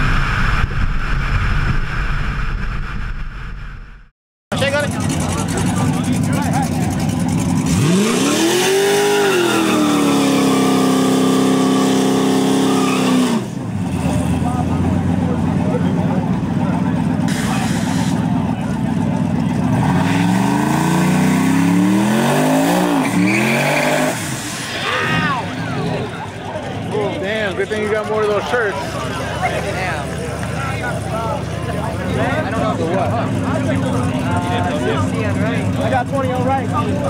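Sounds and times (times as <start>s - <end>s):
car engine revving: 4.6s - 37.0s.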